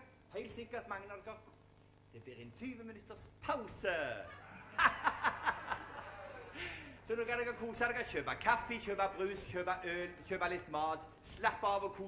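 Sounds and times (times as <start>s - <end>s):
person laughing: 4.3s - 6.9s.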